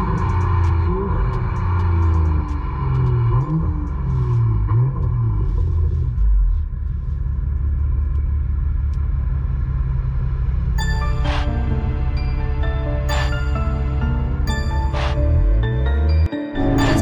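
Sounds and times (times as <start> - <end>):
car engine rumble inside cabin: 0.0 - 17.0.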